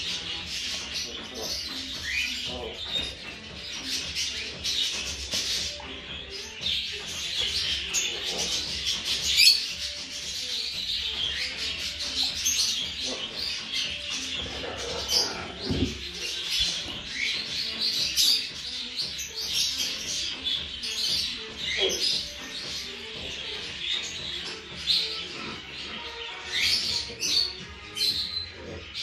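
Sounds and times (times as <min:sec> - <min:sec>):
parrot chicks chirping: 0:00.0 - 0:29.0.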